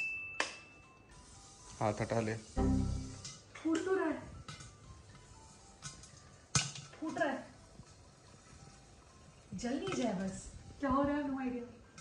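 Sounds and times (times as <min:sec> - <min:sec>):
faint background music: 0:00.0 - 0:12.0
popcorn popping in a kettle: 0:03.2 - 0:12.0.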